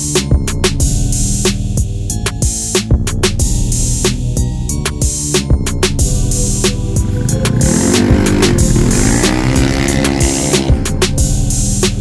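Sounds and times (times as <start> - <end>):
music with drum beat: 0.0 - 12.0
motorcycle passing by: 6.8 - 10.9.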